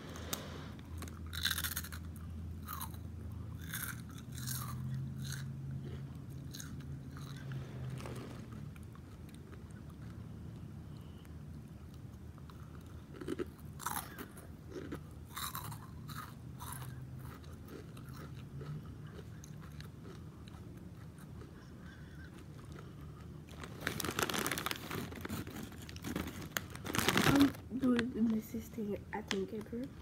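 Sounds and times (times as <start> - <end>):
crunchy snack being chewed: 0.1 - 27.7.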